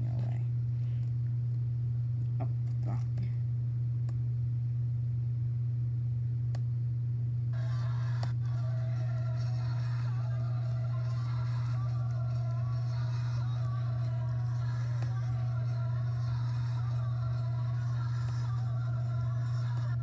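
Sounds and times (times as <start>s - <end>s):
loud low hum: 0.0s - 20.0s
recorded music with voices: 7.6s - 20.0s.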